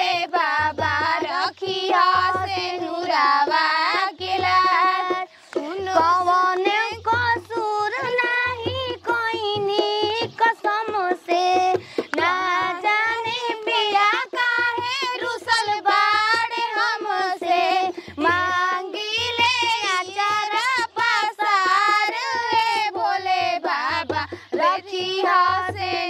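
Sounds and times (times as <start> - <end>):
woman singing ornamented notes: 0.0 - 26.0.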